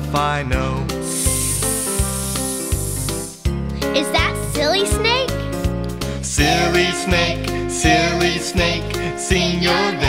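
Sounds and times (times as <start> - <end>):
instrumental backing with bass and guitar: 0.0 - 10.0
voice hissing s sound: 1.0 - 3.4.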